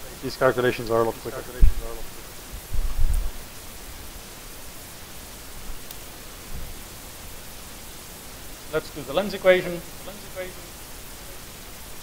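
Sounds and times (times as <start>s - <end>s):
room tone hiss: 0.0s - 12.0s
low thump: 2.7s - 3.3s
faint tick: 5.8s - 6.0s.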